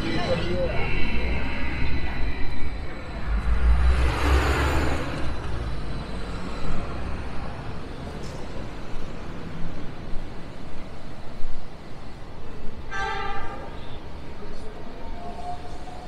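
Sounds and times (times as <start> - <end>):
tram rumbling with hiss and whine: 0.0 - 16.0.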